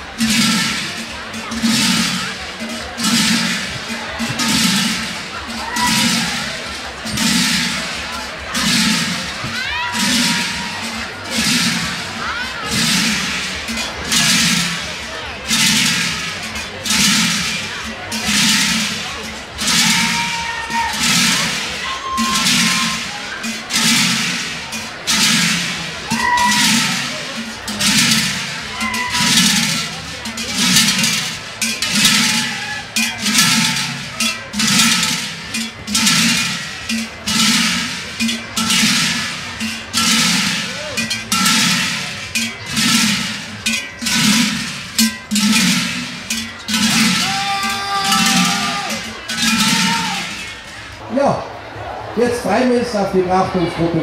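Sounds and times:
large bells clanging in rhythm: 0.0 - 54.0.

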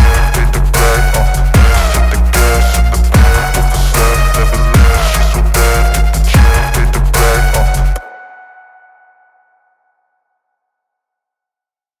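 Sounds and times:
electronic background music: 0.0 - 8.8.

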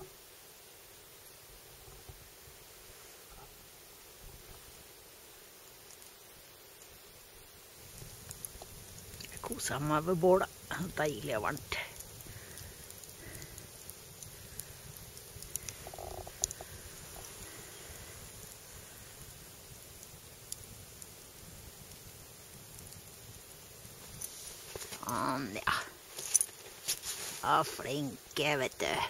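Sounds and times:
campfire crackling: 0.0 - 29.0.

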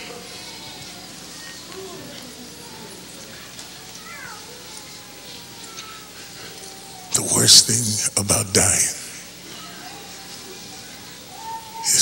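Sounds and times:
distant voices crying out: 0.0 - 12.0.

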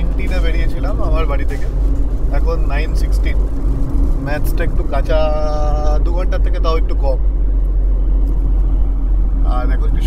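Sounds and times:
road and engine noise inside car: 0.0 - 10.0.

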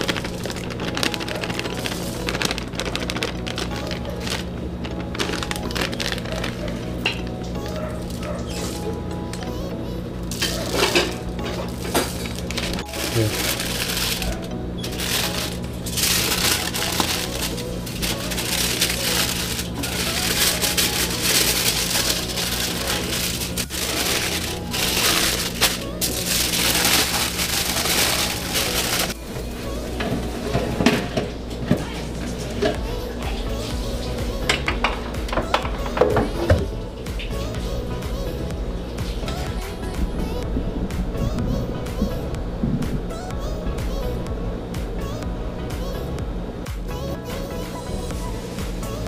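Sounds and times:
aluminium foil crinkling: 0.0 - 8.9, 10.3 - 29.2
background music: 0.0 - 49.0.

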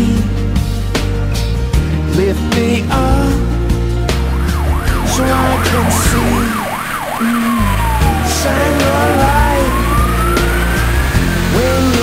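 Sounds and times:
music: 0.0 - 12.0
fire engine siren: 4.1 - 11.9.

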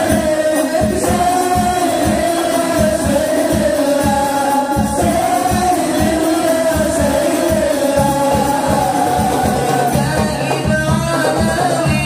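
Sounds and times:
voices singing chant-like melody: 0.0 - 12.0.

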